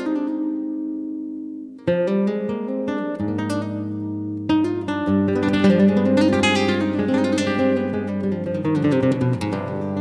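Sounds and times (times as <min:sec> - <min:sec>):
fingerstyle acoustic guitar: 0:00.0 - 0:10.0.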